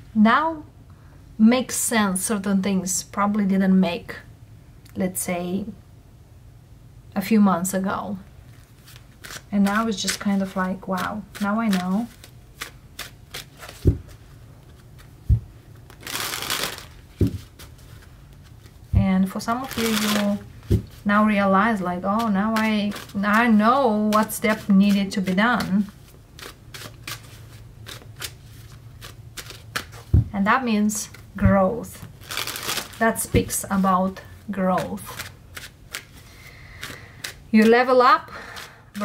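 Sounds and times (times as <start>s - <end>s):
cards being shuffled: 8.5s - 21.1s, 21.8s - 30.3s, 31.0s - 33.9s, 34.8s - 37.8s
cards clicking and flicking: 9.2s - 14.0s, 35.1s - 37.4s
soft thump on padded mat: 17.2s - 17.5s.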